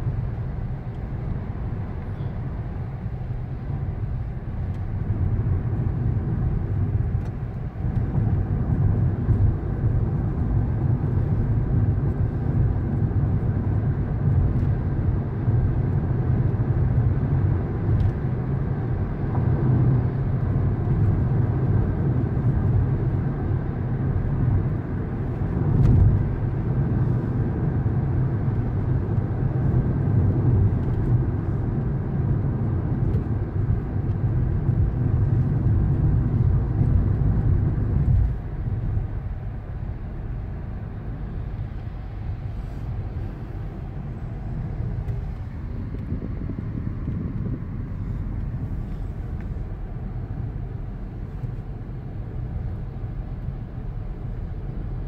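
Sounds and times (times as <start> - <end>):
car cabin road and engine drone: 0.0 - 55.0.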